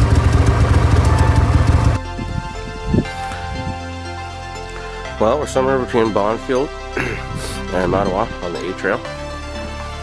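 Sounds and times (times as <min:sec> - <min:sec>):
snowmobile engine: 0:00.0 - 0:02.0
background music: 0:00.1 - 0:10.0.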